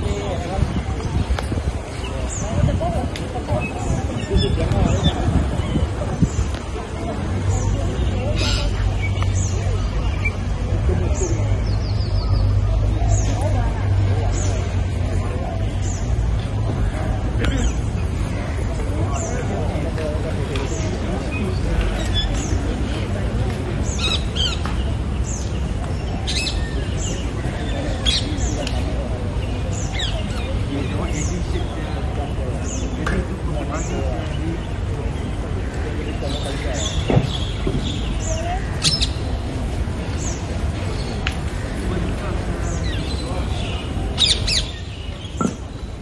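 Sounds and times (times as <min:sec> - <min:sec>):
birds chirping: 0:00.0 - 0:46.0.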